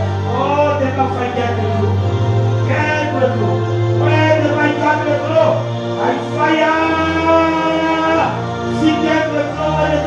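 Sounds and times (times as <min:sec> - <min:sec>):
music with sustained chords: 0:00.0 - 0:10.0.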